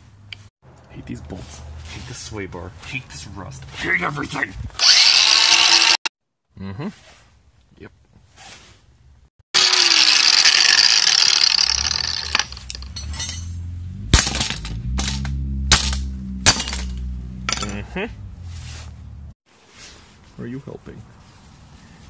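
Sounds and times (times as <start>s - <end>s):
angle grinder running: 4.8s - 6.1s, 9.6s - 13.0s
sharp metallic knocks and clinks: 11.7s - 17.9s.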